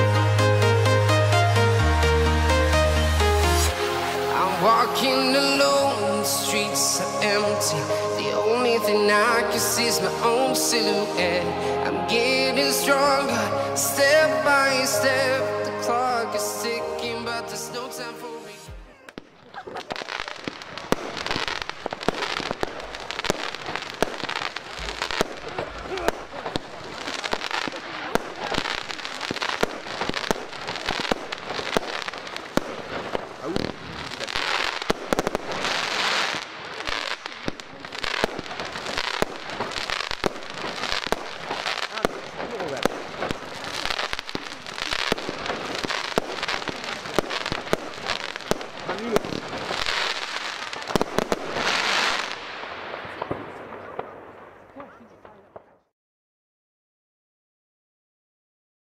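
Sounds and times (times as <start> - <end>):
firework crackling: 0.0 - 55.8.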